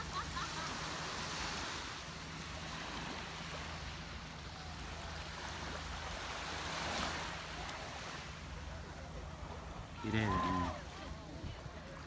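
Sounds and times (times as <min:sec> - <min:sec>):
small waves lapping on sand: 0:00.0 - 0:12.0.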